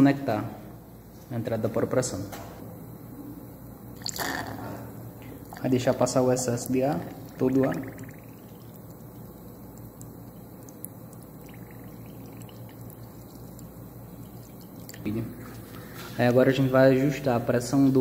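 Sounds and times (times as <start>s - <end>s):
water bubbling and trickling: 5.4s - 16.0s.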